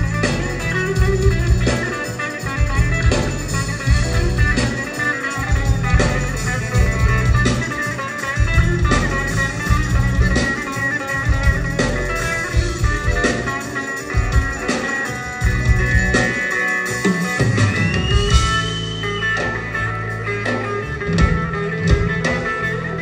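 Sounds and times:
pulsing low accompaniment: 0.0s - 1.9s, 2.5s - 7.7s, 8.4s - 10.6s, 11.3s - 14.8s, 15.4s - 16.4s.

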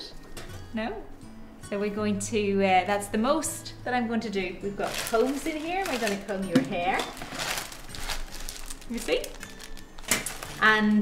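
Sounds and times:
plastic packaging crinkling: 4.8s - 10.6s.

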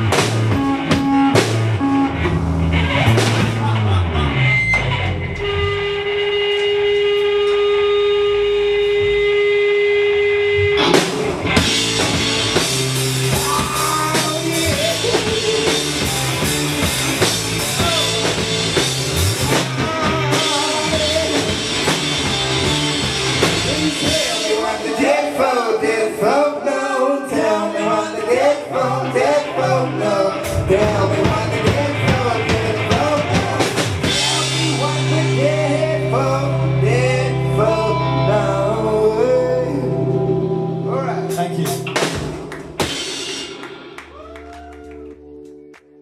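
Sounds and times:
live rock band: 0.0s - 46.0s
man singing: 13.3s - 18.6s, 19.2s - 22.8s, 23.4s - 42.0s.

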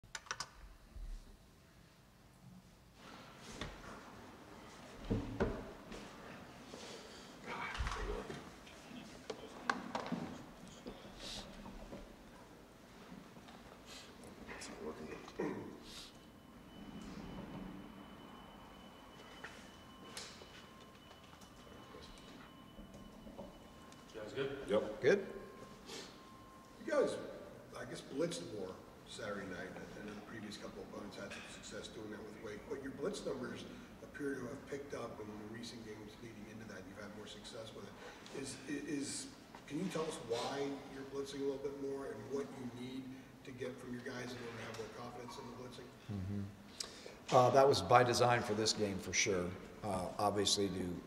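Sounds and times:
faint high whine: 0.9s - 46.1s.

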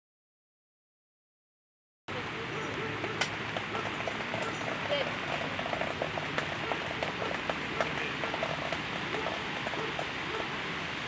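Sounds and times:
rain hissing: 2.1s - 11.0s
raindrops ticking: 2.5s - 10.6s.

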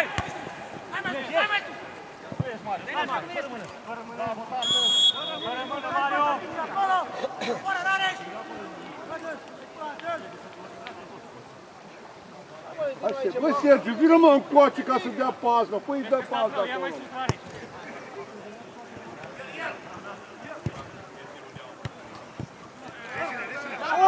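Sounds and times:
whistle blast: 4.6s - 6.0s.

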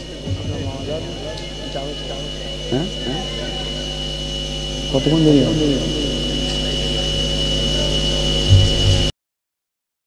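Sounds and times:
public-address system hum and hiss: 0.0s - 9.1s
thin high-pitched whine: 0.0s - 9.1s
short low thumps: 0.2s - 3.0s, 8.5s - 9.1s.

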